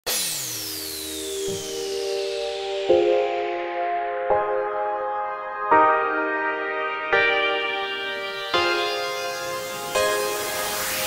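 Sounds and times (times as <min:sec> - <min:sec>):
held synth chord: 0:00.1 - 0:11.0
synthesizer sweep: 0:00.1 - 0:11.0.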